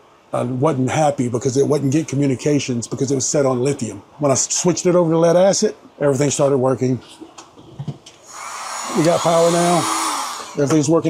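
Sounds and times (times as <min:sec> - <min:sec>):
heat gun fan rushing: 0:08.2 - 0:10.9.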